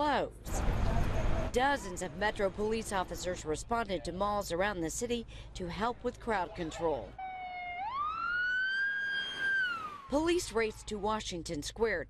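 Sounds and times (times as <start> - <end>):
police siren wailing: 7.2 - 10.9.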